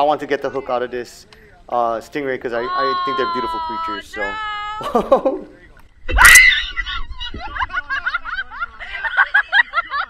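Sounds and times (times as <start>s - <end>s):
person giggling high-pitched: 4.8s - 5.5s.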